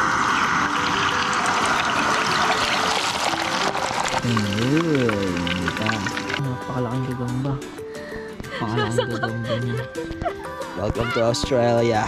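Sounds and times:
hot oil sizzling in a pot: 0.0 - 6.5.

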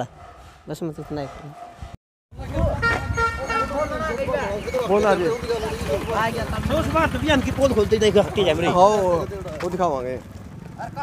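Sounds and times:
people talking: 2.4 - 10.2
vehicle horn hooting: 2.6 - 7.2
motorcycle engine running: 4.5 - 11.0.

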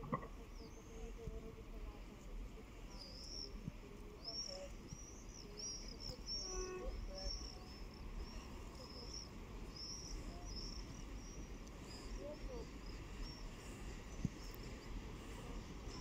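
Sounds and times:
small birds chirping: 0.0 - 16.0
steady low rumble: 0.0 - 16.0.

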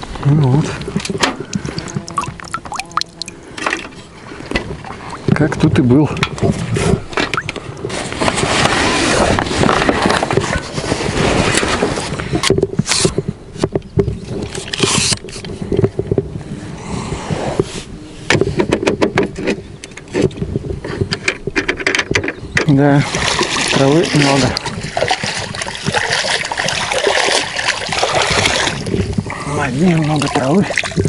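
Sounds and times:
water splashing and sloshing: 0.0 - 12.8, 22.7 - 31.0.

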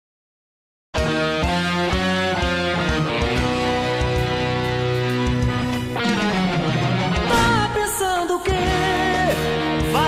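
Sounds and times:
bass: 1.0 - 10.0
electric guitar melody: 1.0 - 10.0.

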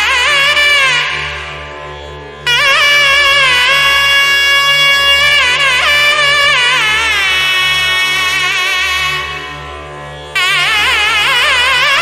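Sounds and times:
steady low drone: 0.0 - 12.0
wind instrument melody: 0.0 - 12.0.

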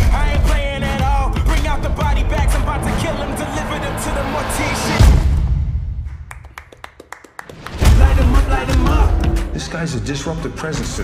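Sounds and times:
heavy low thump: 0.0 - 6.1
music: 0.0 - 11.0.

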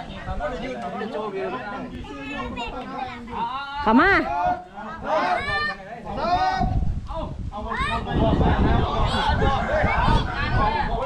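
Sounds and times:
people shouting drawn-out calls: 4.0 - 6.8.

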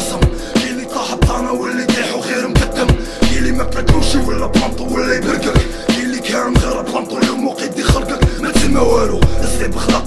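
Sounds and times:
hip hop beat: 0.0 - 10.0
kick drum pulse: 3.3 - 5.8.

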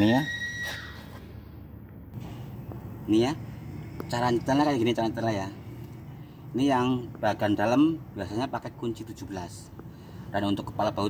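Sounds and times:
high steady squeal: 0.0 - 1.5
low background noise: 0.0 - 11.0
man speaking: 3.0 - 5.8, 6.5 - 11.0.

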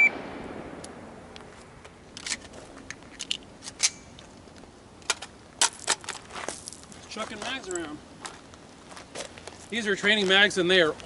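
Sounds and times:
rifle shot echo: 0.0 - 2.1
magazine dropped onto gravel: 1.8 - 7.9
rifle and magazine handling clicks: 2.2 - 6.2.

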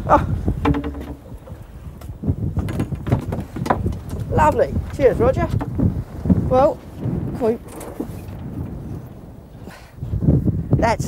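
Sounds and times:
boat noise: 0.0 - 9.8
wind rumble: 0.0 - 11.0
knock: 0.6 - 1.6.

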